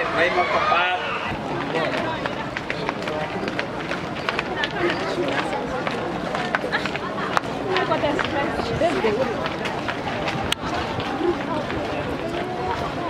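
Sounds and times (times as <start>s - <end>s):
people chatting: 0.0s - 13.0s
footsteps on pavement: 1.3s - 13.0s.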